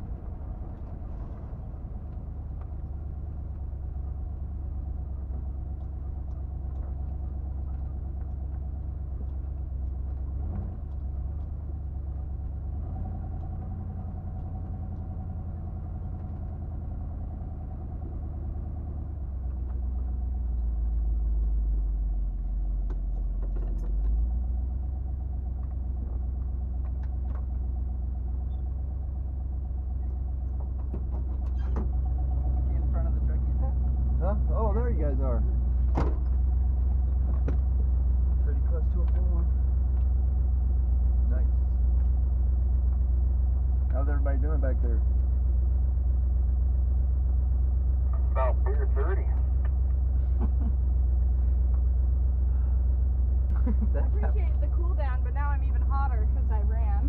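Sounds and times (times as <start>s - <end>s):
car engine running low: 0.0s - 57.0s.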